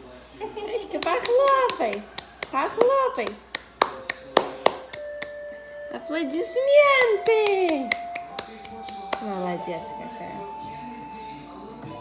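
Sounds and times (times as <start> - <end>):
baby's hands clapping: 0.9 - 5.4, 7.0 - 9.3.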